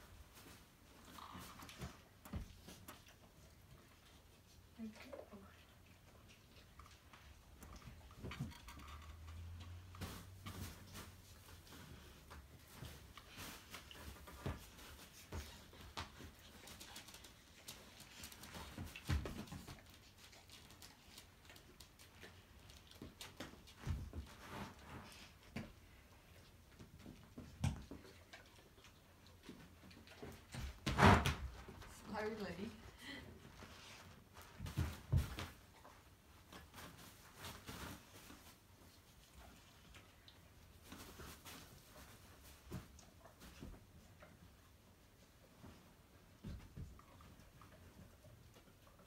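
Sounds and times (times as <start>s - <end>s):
dog paws tapping on pads: 6.7s - 32.8s.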